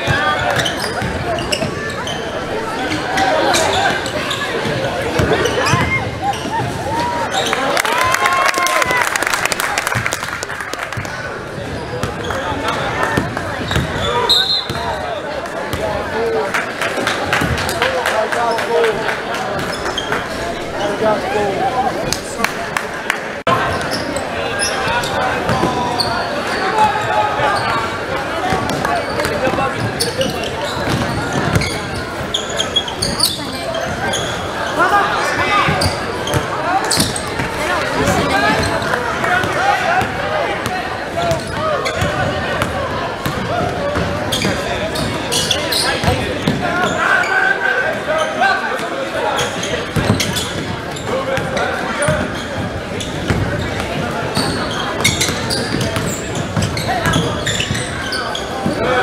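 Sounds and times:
crowd babble echoing: 0.0s - 59.0s.

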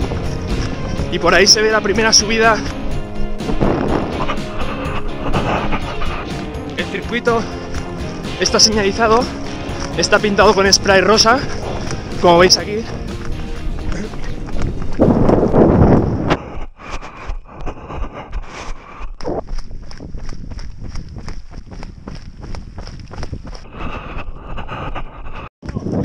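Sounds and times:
background music: 0.0s - 15.8s
running footsteps on stony ground: 0.0s - 26.0s.

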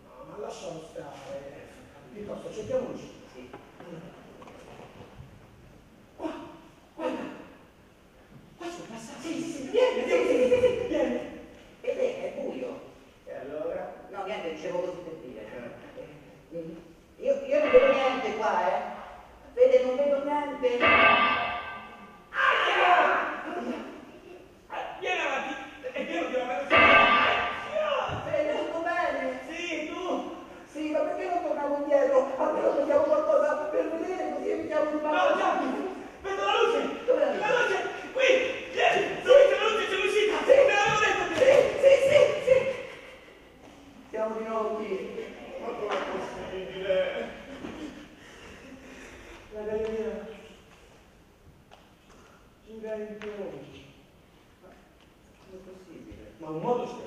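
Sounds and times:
man speaking: 8.6s - 20.9s, 24.7s - 43.2s.

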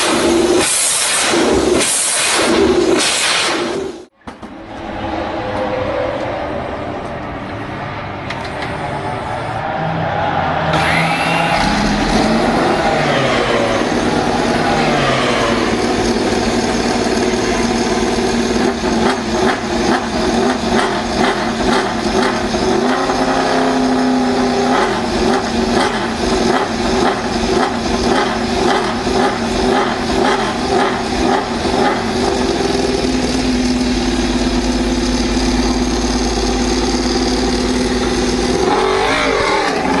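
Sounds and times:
roller starter whine: 10.6s - 40.0s
motorcycle engine revving: 10.8s - 40.0s.

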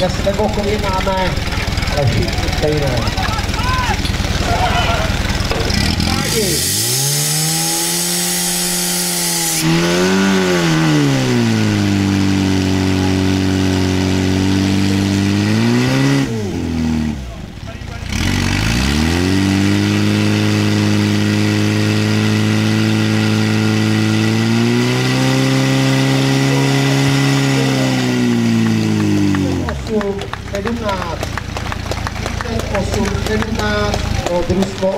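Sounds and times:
pump engine running at high revs: 0.0s - 34.9s.

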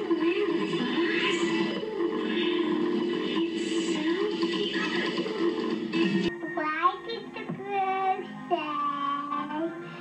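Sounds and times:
girl singing: 6.5s - 9.8s.

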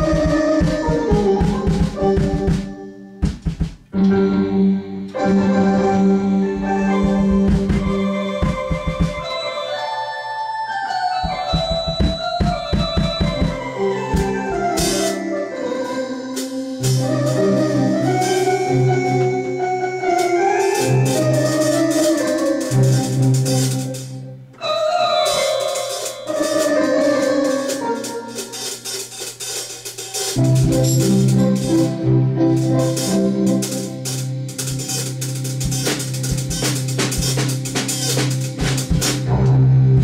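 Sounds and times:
drum kit: 0.0s - 4.1s, 6.0s - 9.3s, 11.2s - 24.6s, 25.2s - 40.0s
bass line: 0.0s - 9.3s, 30.4s - 40.0s
organ-like keyboard chords: 0.0s - 40.0s.

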